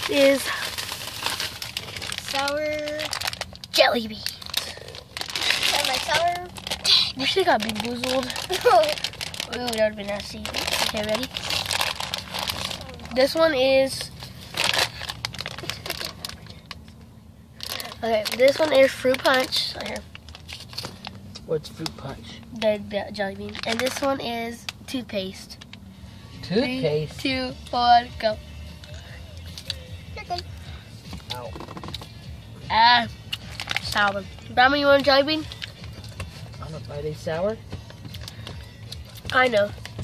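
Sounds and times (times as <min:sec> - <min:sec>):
plastic bag crinkling: 0:00.0 - 0:13.4, 0:14.2 - 0:16.8, 0:17.6 - 0:21.2, 0:23.4 - 0:24.2, 0:33.4 - 0:34.1
faint music: 0:00.0 - 0:40.0.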